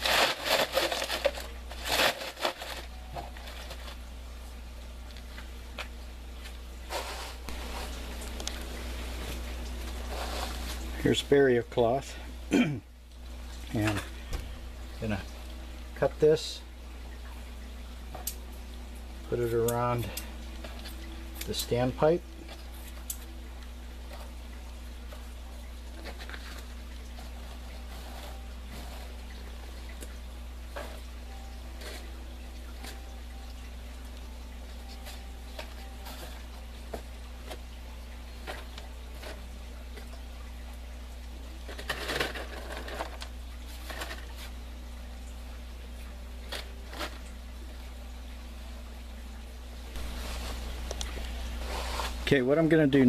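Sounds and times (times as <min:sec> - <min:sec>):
cloth rustling: 0:50.0 - 0:52.4.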